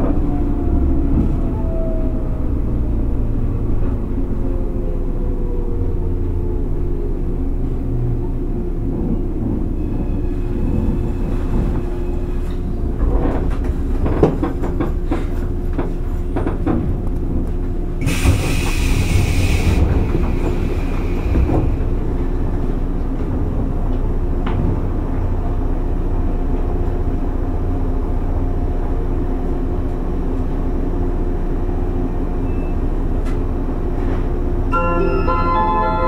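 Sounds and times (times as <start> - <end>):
air hissing: 18.0 - 21.3.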